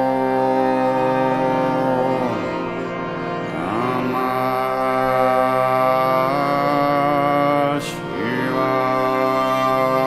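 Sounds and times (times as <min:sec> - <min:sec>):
devotional chant music: 0:00.0 - 0:10.0
steady drone: 0:00.0 - 0:10.0.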